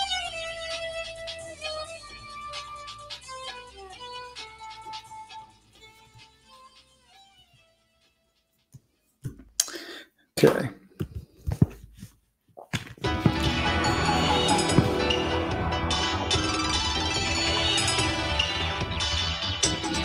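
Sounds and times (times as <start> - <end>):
plucked-string melody: 13.0 - 20.0.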